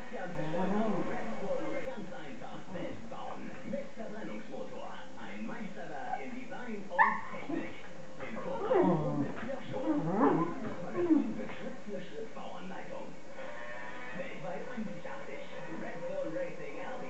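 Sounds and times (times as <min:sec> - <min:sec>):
dog yelping: 0:07.0 - 0:07.4
dogs growling and barking: 0:08.4 - 0:11.4.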